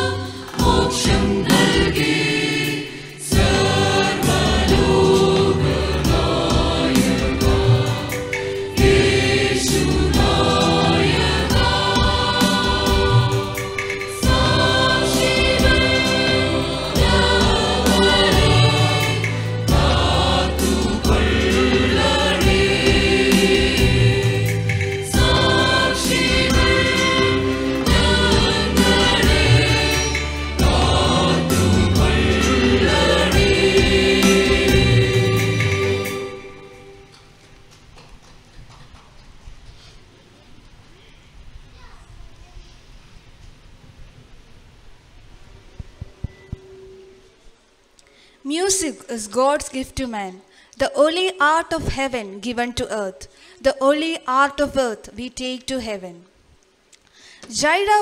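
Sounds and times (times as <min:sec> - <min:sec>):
mixed choir singing: 0:00.0 - 0:37.1.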